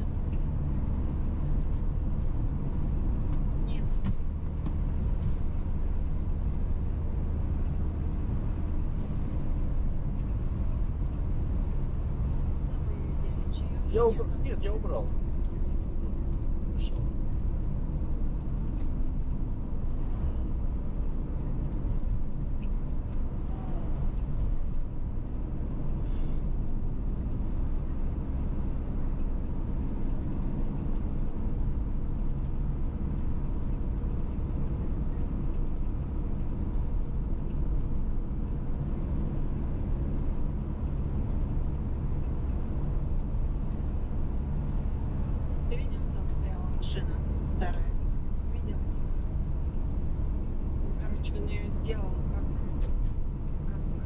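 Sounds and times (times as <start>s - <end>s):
car engine rumble: 0.0s - 54.0s
tyres on asphalt: 0.0s - 54.0s.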